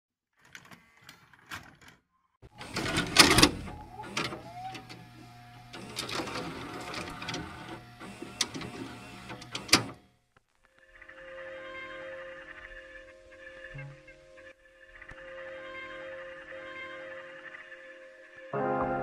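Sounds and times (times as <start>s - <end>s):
mechanical clattering with clicks: 5.6s - 10.0s.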